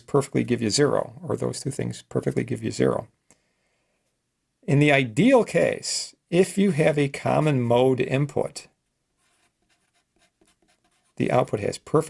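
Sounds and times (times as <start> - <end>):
marker scratching on paper: 9.2 - 11.5.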